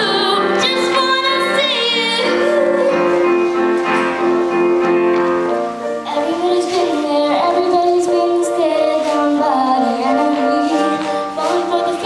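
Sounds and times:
girl singing into microphone: 0:00.0 - 0:03.8, 0:06.0 - 0:12.0
keyboard accompaniment: 0:00.0 - 0:12.0.

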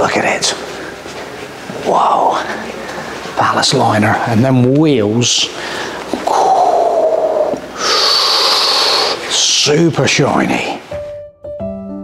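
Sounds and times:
person exhaling breathily: 0:05.6 - 0:09.3
person vocalizing ooh: 0:06.2 - 0:09.2.

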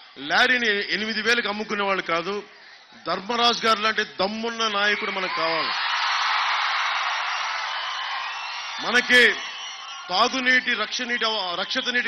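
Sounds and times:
large crowd cheering: 0:04.5 - 0:12.0.

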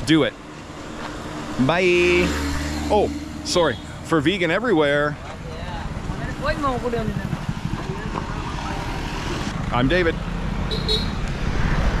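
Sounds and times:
road traffic rumble: 0:00.0 - 0:12.0
car driving past: 0:00.6 - 0:04.1.

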